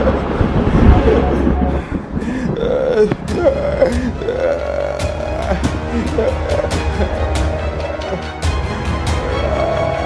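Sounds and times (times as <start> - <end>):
person making guttural vocal sounds: 2.2 - 8.4, 9.2 - 10.0.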